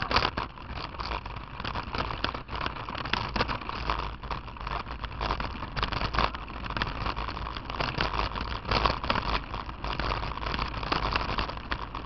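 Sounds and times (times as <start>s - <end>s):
bicycle tyres on gravel: 0.0s - 12.0s
camera rattling and knocking: 0.0s - 12.0s.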